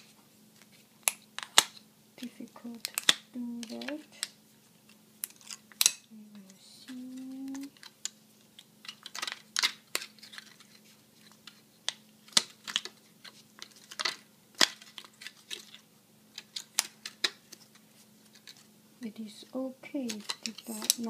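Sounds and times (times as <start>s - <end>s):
plastic strips crinkling and clicking: 0.0s - 21.0s
plastic snapping: 2.8s - 4.4s, 5.2s - 17.7s, 20.0s - 21.0s.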